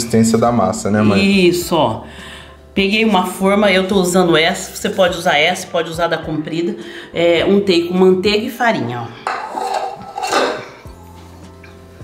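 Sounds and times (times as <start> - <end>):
soft background music: 0.0 - 12.0
glass bowl and spatula clinking: 9.3 - 10.8.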